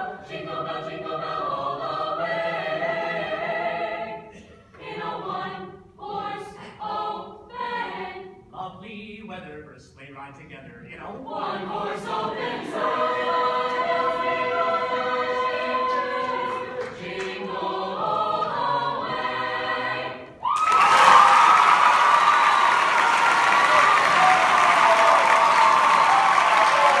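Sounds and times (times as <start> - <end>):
choir holding a chord: 0.0 - 8.3, 11.2 - 20.4
audience applause and cheering: 20.4 - 27.0.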